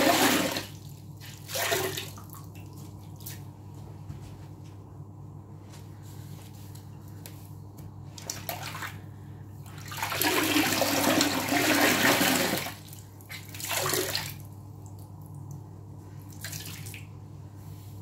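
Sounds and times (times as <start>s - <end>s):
water gushing into sink: 0.0s - 2.3s, 9.8s - 14.4s.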